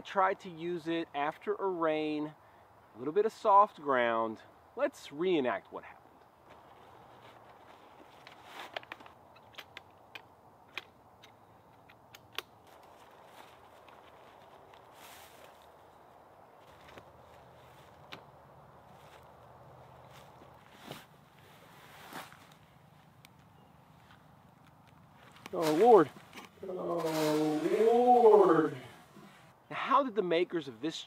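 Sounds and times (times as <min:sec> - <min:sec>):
light clicks and knocks of poles: 0:06.0 - 0:15.8, 0:16.6 - 0:28.4
footsteps in dry leaves: 0:06.4 - 0:08.8, 0:12.6 - 0:18.1, 0:18.8 - 0:23.2, 0:25.1 - 0:29.5
fabric rustling: 0:20.0 - 0:22.7, 0:25.2 - 0:29.5.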